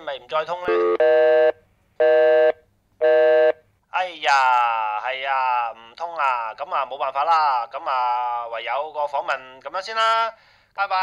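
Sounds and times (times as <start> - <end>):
telephone busy tone beeps: 0.7 - 3.6.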